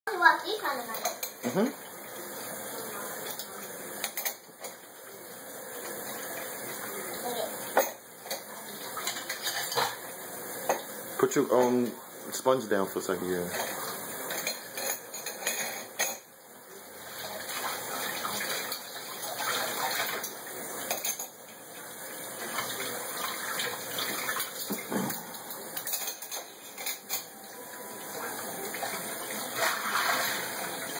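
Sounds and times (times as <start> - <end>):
cutlery and dishes clinking: 0.9 - 1.5, 3.2 - 4.8, 7.7 - 10.0, 10.6 - 11.9, 13.4 - 16.3, 18.4 - 21.5, 23.5 - 27.6, 28.2 - 30.9.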